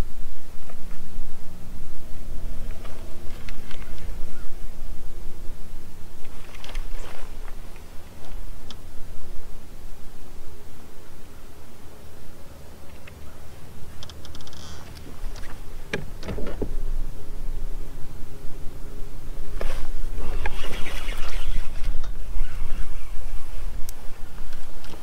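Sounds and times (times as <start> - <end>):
low steady rumble: 0.0 - 25.0
fishing reel and line: 14.0 - 15.6, 20.2 - 23.2.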